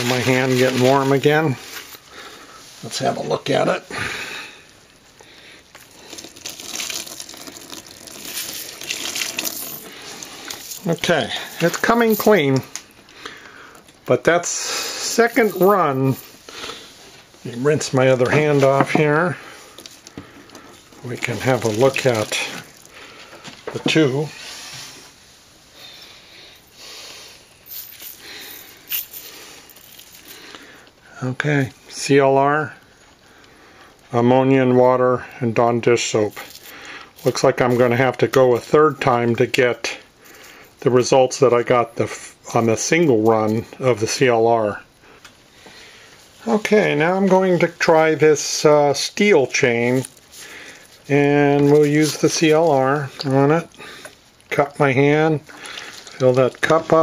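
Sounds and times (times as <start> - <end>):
water trickling hiss: 5.8 - 11.5, 55.4 - 56.3
water splashing in basin: 6.0 - 10.8, 21.1 - 22.9, 55.4 - 57.0
soapy water swishing and dripping: 21.2 - 23.0.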